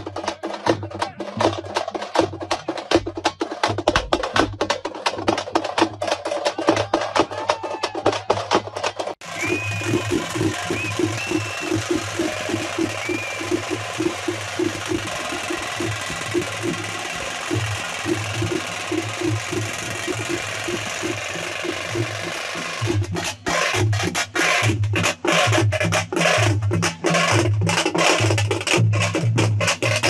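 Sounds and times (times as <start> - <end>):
drums beating fast rhythm: 0.0 - 30.0
large outdoor crowd noise: 0.0 - 30.0.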